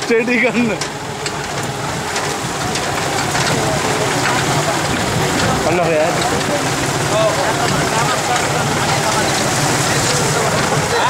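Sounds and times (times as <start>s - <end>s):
steady rushing noise: 0.0s - 11.0s
vehicle engine running: 0.0s - 11.0s.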